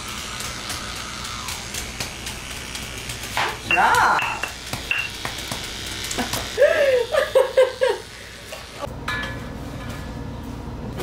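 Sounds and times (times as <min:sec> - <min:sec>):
woman laughing: 0:06.2 - 0:08.2.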